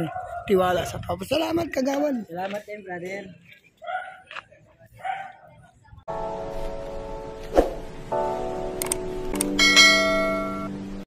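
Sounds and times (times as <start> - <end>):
background music with held chords: 6.1 - 11.0
bright bell chime: 9.6 - 10.7.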